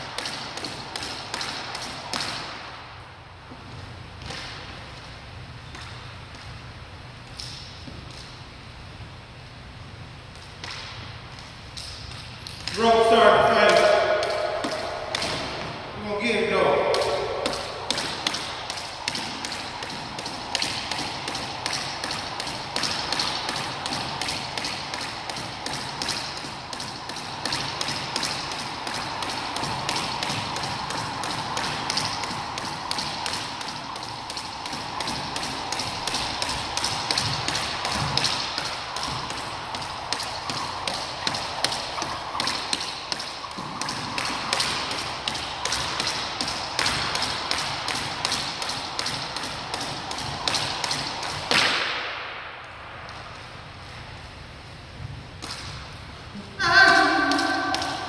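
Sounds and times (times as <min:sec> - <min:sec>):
jump rope slapping floor: 0:00.0 - 0:02.9, 0:03.5 - 0:08.5, 0:10.3 - 0:54.2, 0:54.9 - 0:58.0.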